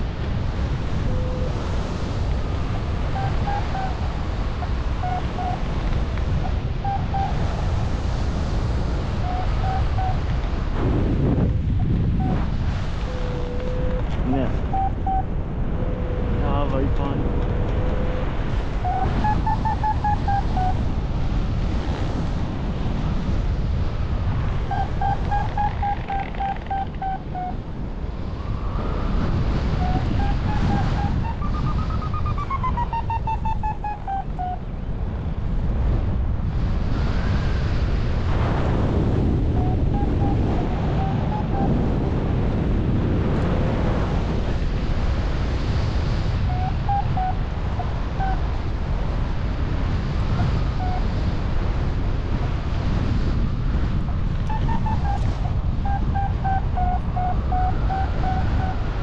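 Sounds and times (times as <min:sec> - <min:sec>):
wind rushing over microphone: 0:00.0 - 0:59.0.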